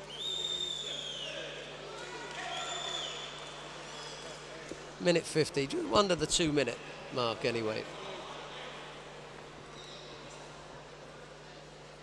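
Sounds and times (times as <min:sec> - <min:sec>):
shrill whistles: 0:00.0 - 0:01.4, 0:02.5 - 0:03.4.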